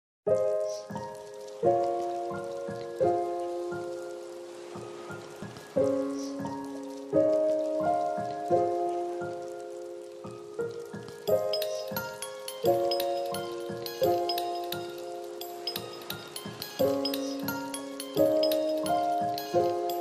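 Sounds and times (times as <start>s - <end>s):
soft instrumental music: 0.3s - 20.0s.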